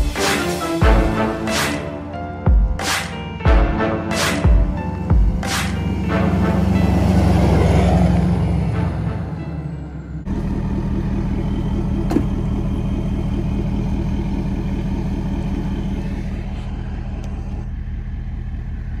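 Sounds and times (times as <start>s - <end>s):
background music: 0.0s - 10.2s
diesel engine idling: 4.7s - 19.0s.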